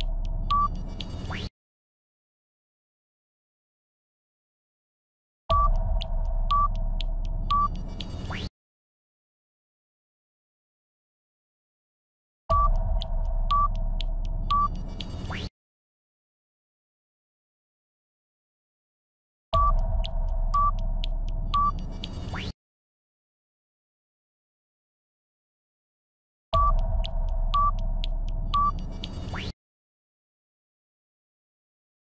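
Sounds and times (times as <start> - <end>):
short beeps: 0.5 - 0.9, 6.5 - 6.7, 7.5 - 7.8, 13.5 - 13.7, 14.5 - 14.8, 20.6 - 20.8, 21.6 - 21.8, 27.6 - 27.8, 28.6 - 28.8.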